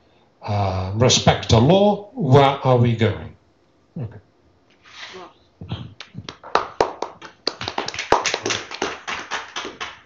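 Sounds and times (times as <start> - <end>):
people clapping: 6.0 - 10.0.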